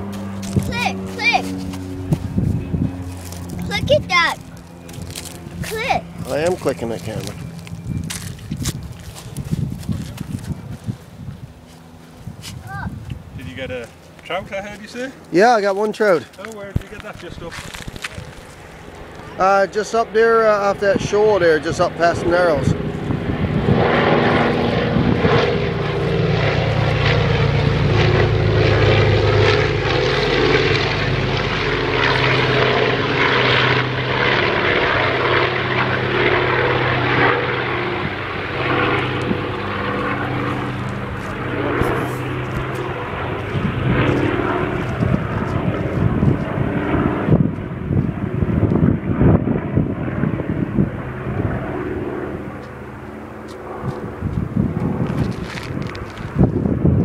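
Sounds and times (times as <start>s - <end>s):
propeller plane engine drone: 0.0s - 57.0s.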